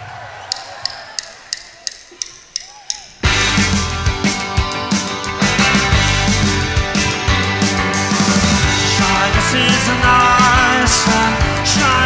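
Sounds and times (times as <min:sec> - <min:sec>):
faint audience background: 0:00.0 - 0:12.0
drumstick count-in ticks: 0:00.4 - 0:05.2.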